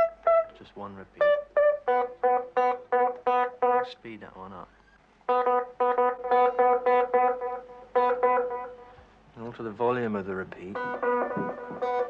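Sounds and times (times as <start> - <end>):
plucked guitar notes with echo: 0.0 - 0.6, 1.2 - 3.9, 5.3 - 9.0, 10.7 - 12.0.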